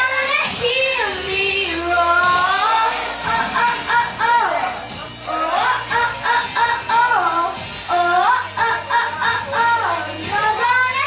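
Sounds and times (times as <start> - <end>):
girl singing wordless notes: 0.0 - 11.0
pop backing track: 0.0 - 11.0.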